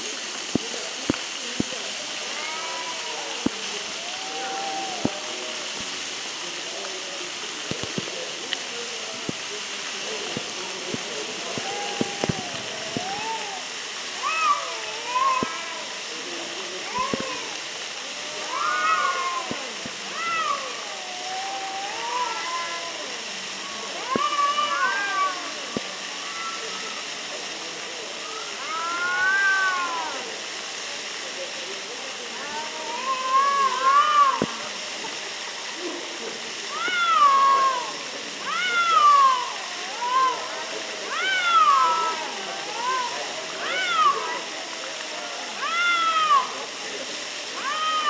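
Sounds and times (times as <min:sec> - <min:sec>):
cats yowling: 0:02.3 - 0:05.2, 0:14.2 - 0:16.0, 0:16.9 - 0:25.9, 0:28.5 - 0:30.4, 0:32.4 - 0:34.6, 0:36.7 - 0:44.5, 0:45.6 - 0:46.7, 0:47.6 - 0:48.0.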